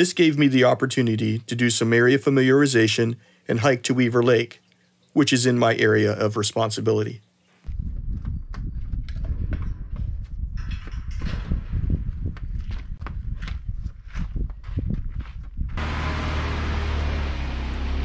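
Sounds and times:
tyres on dirt road: 14.1 - 18.0
car engine hum: 15.8 - 18.0.

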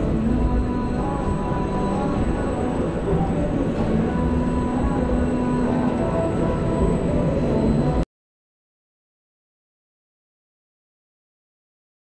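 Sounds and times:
faint humming tones: 0.0 - 8.0.

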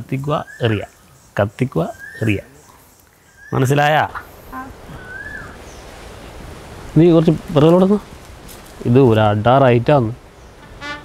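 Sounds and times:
outdoor background hiss: 0.0 - 11.0
whistled bird chirp: 1.9 - 2.5, 5.0 - 5.8.

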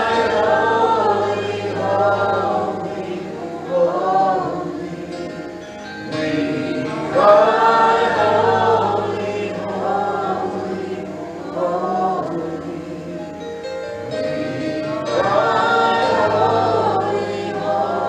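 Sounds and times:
group singing in harmony: 0.0 - 18.0.

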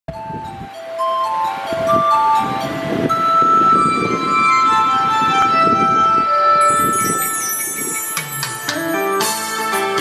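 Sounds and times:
karaoke backing track over loudspeakers: 0.1 - 10.0.

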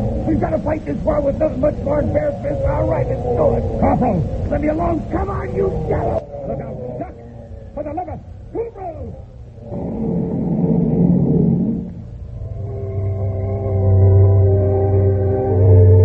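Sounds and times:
rumbling noise: 0.0 - 16.0
sustained music chords: 0.0 - 16.0.

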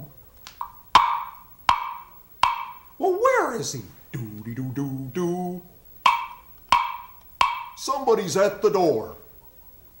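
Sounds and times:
knocks on hollow wooden box: 1.0 - 2.8, 6.1 - 7.8.

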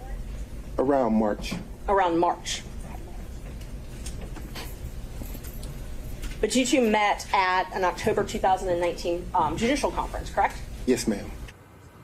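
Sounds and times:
steady low hum: 0.0 - 11.5
faint clicks and rustles: 2.6 - 11.5.

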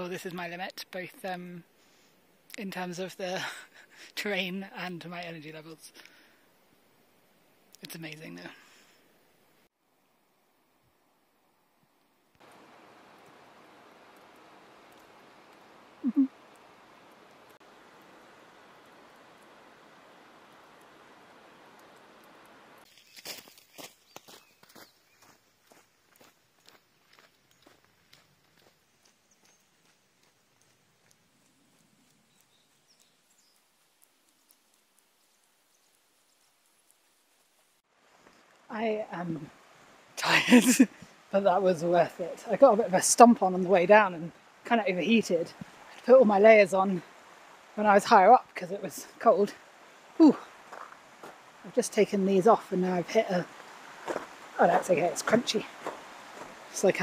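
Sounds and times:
faint outdoor hiss: 0.0 - 57.0
footsteps crunching on snow: 22.9 - 31.2, 50.4 - 51.6, 53.4 - 56.8.

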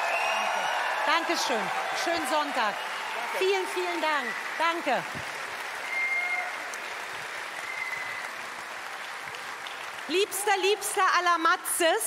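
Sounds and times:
audience applauding: 0.0 - 11.4.

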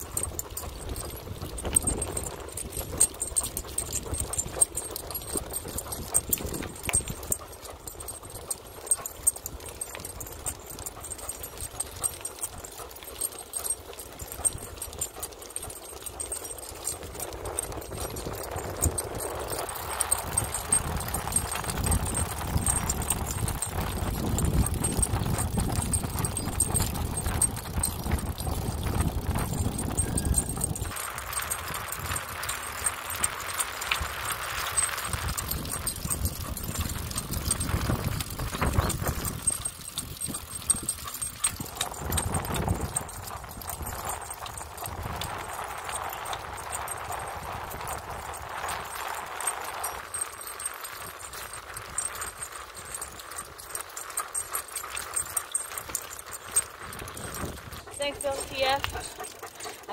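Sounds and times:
dog footsteps on asphalt: 0.0 - 59.9
wind rumble on microphone: 0.0 - 59.9.

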